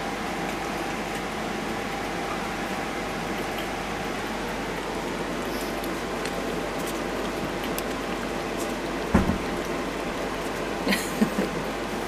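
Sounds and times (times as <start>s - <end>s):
hedgehogs lapping milk: 0.0s - 12.0s.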